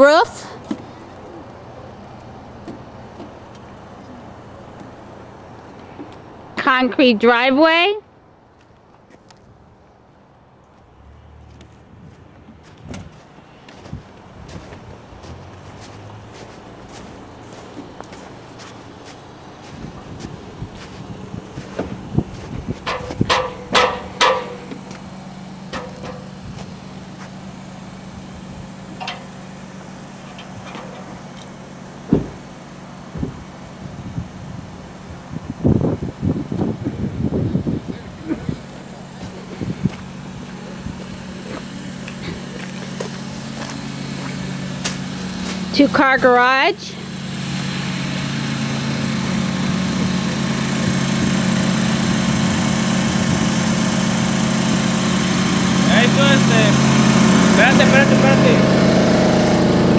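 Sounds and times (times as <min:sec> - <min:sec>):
engine drone: 0:00.0 - 0:59.9
tools knocking and tapping: 0:22.9 - 0:24.8, 0:25.7 - 0:26.2
loud thud: 0:32.1 - 0:32.4.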